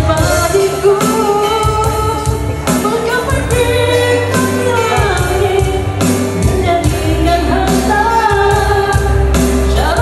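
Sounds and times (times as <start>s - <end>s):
instrumental backing track: 0.0s - 10.0s
person singing pop song: 0.0s - 10.0s.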